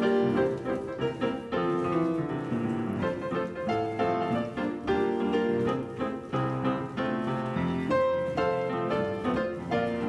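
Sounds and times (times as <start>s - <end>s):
piano playing lilting rhythm: 0.0s - 10.0s.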